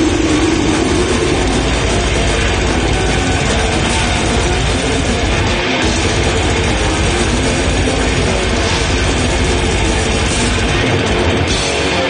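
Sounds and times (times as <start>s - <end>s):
fast bass drum hits: 0.0s - 11.8s
metal band playing live: 0.0s - 12.0s.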